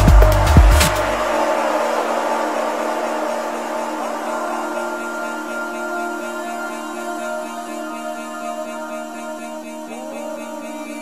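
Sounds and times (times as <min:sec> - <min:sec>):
higher held synth note: 0:00.0 - 0:10.5
held synth tones: 0:00.0 - 0:11.0
rushing noise wash: 0:00.0 - 0:11.0.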